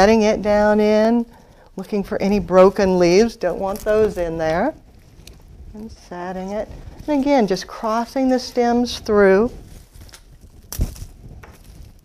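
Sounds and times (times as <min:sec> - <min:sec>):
faint handling noise: 0:01.2 - 0:12.0.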